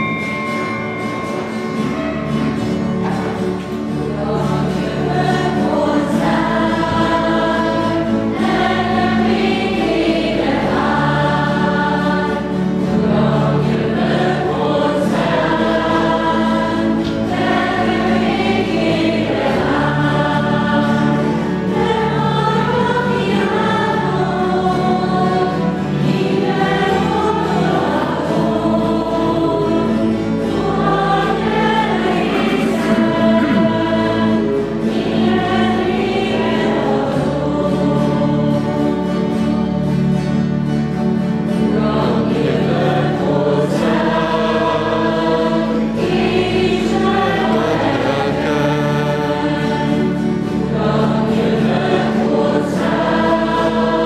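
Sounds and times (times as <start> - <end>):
choir singing a hymn: 0.0 - 54.0
held low accompanying notes: 0.0 - 54.0.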